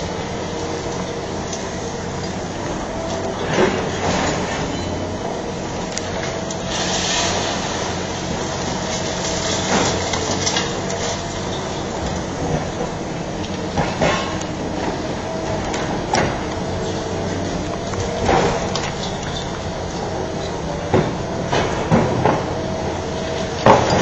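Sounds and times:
excavator running: 0:00.0 - 0:24.0.

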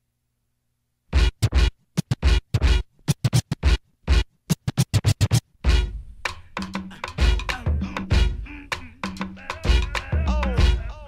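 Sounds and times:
turntable scratching: 0:01.1 - 0:11.0.

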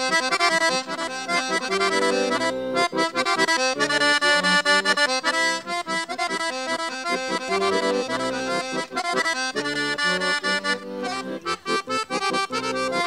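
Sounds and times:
accordion dance music: 0:00.0 - 0:13.0.

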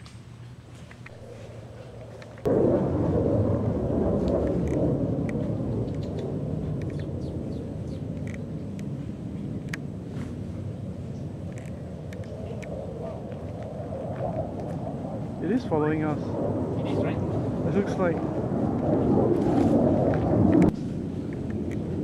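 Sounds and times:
thunder rumbling: 0:01.1 - 0:22.0.

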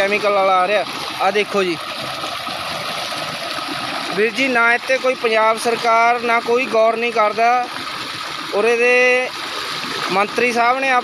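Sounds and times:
water gushing from pipe: 0:00.0 - 0:11.0
water splashing down channel: 0:00.0 - 0:11.0.

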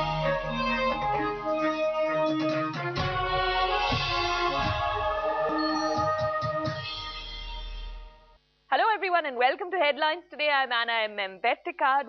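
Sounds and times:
woman speaking: 0:08.7 - 0:12.0.

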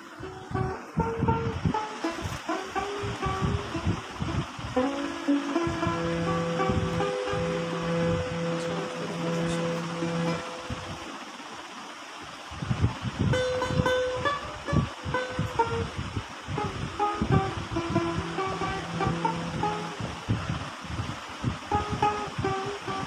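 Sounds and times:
harmonium playing: 0:00.0 - 0:11.1, 0:13.4 - 0:20.3, 0:21.7 - 0:23.0.

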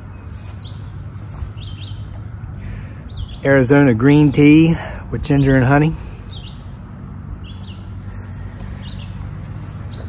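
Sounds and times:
songbird chirping: 0:00.0 - 0:10.0.

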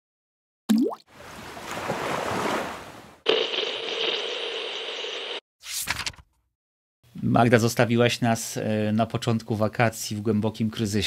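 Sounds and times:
steady held electronic tone: 0:03.3 - 0:05.4.

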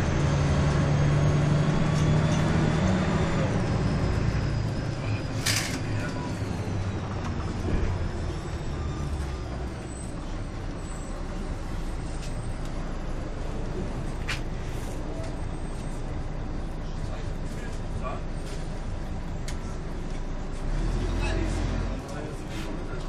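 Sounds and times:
bus engine low rumble: 0:00.0 - 0:23.0.

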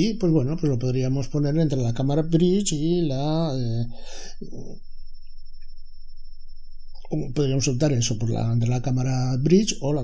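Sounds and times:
faint high-pitched tone: 0:00.0 - 0:10.0
low steady hum: 0:00.0 - 0:10.0.

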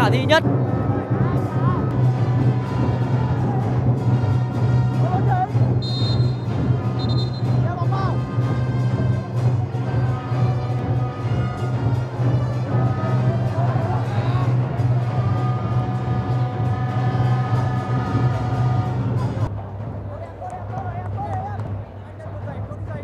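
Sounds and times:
drum-led music: 0:00.0 - 0:23.0
high whistle-like tones: 0:05.8 - 0:07.6.

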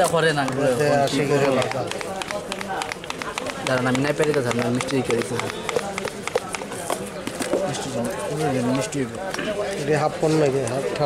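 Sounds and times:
rapid light plastic clicks: 0:01.4 - 0:06.7.

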